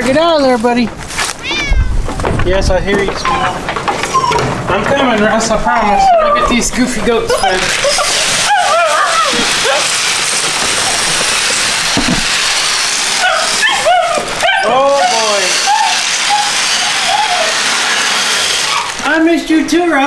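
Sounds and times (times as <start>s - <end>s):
puppy whining and yipping: 4.0s - 4.7s, 5.8s - 6.6s, 7.3s - 10.1s, 13.2s - 17.7s, 18.6s - 19.0s.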